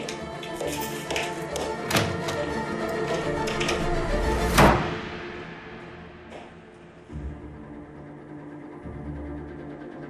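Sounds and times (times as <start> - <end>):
background music with held tones: 0.0 - 10.0.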